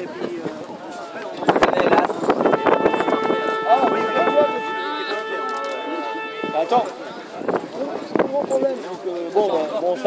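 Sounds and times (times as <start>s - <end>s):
people talking: 0.0s - 10.0s
steady held tone: 2.6s - 7.2s.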